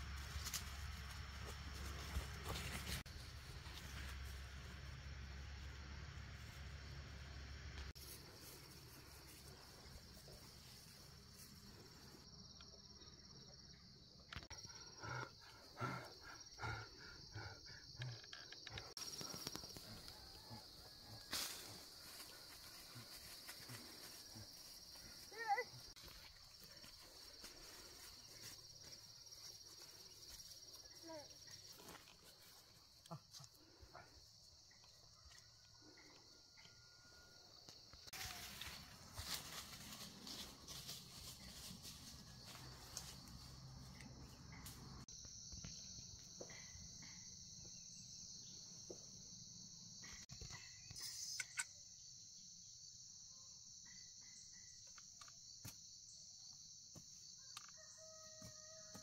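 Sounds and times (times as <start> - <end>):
high-pitched insect chorus: 7.8 - 59.0.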